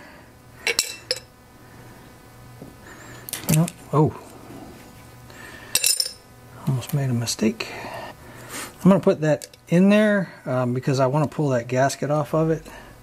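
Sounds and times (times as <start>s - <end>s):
metal parts clinking into glass jar: 5.8s - 6.2s.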